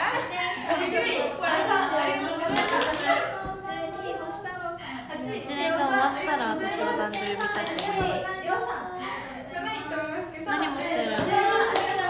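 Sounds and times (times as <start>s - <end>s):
young woman talking: 0.0s - 8.9s.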